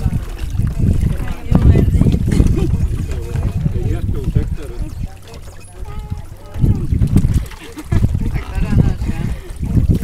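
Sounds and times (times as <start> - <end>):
people's voices: 0.0 - 9.6
water splashing and trickling: 0.0 - 10.0.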